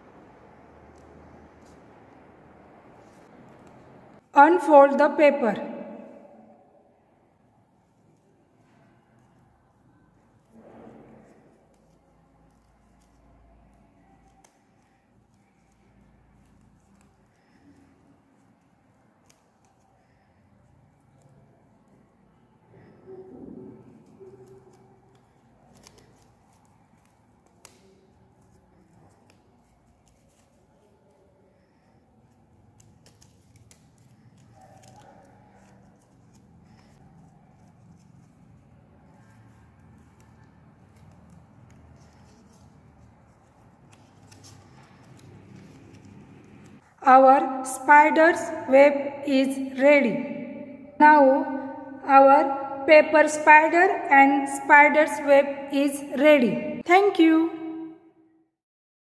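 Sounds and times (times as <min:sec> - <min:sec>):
paper rustling and crackling: 0:08.2 - 0:22.0, 0:22.8 - 0:46.9.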